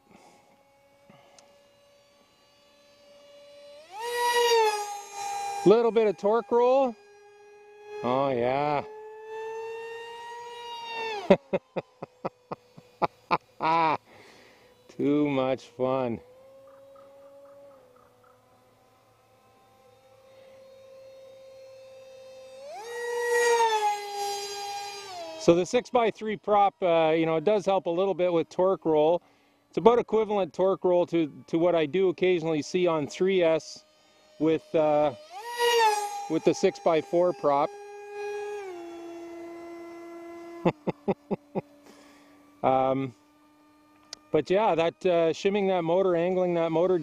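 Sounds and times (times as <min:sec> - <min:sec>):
model jet motor whine: 0:00.0 - 0:47.0.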